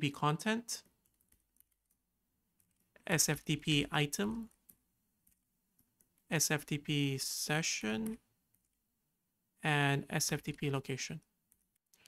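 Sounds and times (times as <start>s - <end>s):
computer keyboard keystrokes: 0.9s - 2.0s.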